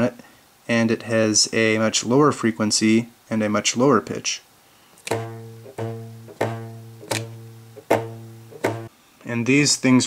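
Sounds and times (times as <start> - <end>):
rubber band plucked twanging: 5.1 - 8.9.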